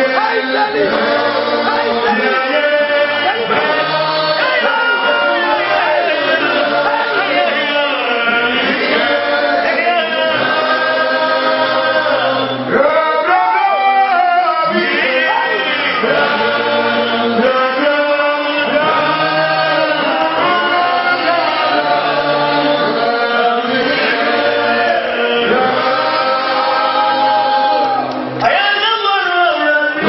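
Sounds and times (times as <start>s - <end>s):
men singing a hymn: 0.0s - 30.0s.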